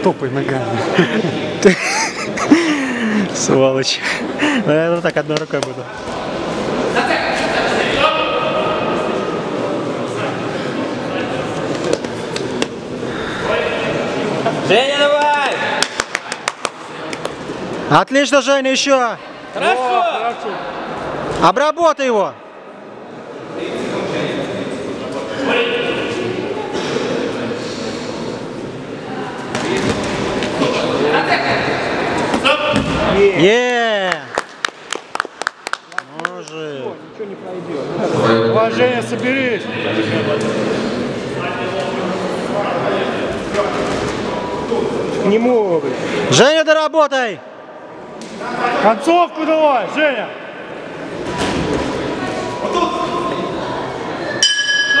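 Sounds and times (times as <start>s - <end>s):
voices and shouts in hall: 3.2s - 55.0s
metal bell clang: 54.4s - 55.0s.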